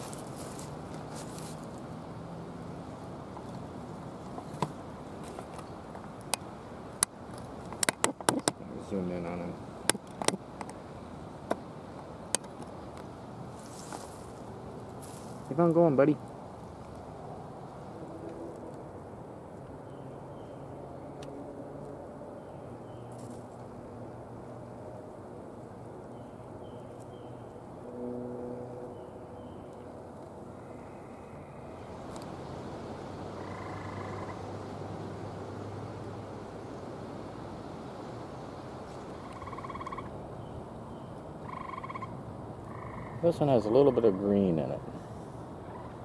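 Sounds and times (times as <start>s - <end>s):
steady outdoor hiss: 0.0s - 46.0s
tree frogs trilling: 28.8s - 46.0s.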